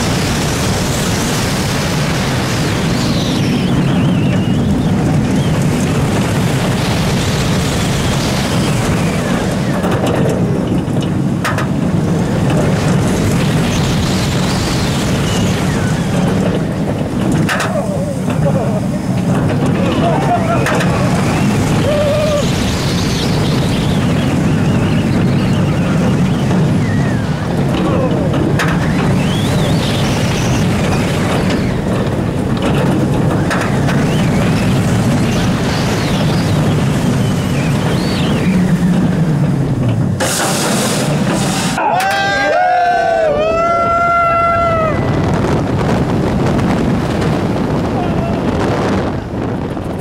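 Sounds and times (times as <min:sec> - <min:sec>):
roller coaster rumbling on track: 0:00.0 - 0:50.0
wind rushing over microphone: 0:00.0 - 0:50.0
riders screaming and whooping: 0:17.4 - 0:32.0, 0:41.7 - 0:49.4.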